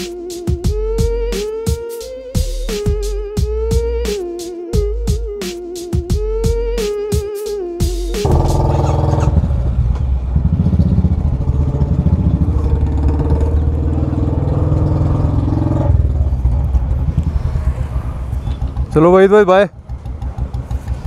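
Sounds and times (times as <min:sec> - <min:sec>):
motorcycle engine revving: 0:08.2 - 0:21.0.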